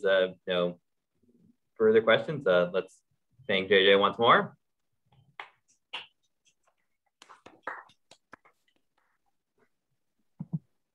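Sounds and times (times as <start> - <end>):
people clapping: 7.2 - 8.6.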